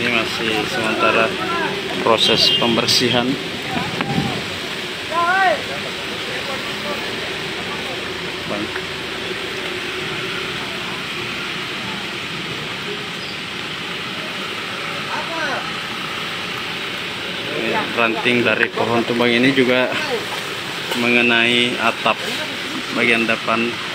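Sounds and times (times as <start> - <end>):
faint voices: 0.0 - 23.9
steady hissing background noise: 0.0 - 23.9.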